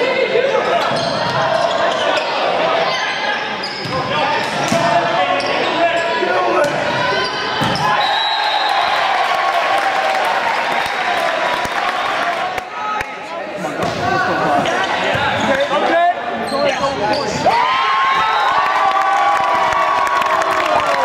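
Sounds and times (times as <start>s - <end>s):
people shouting in a hall: 17.2s - 21.0s.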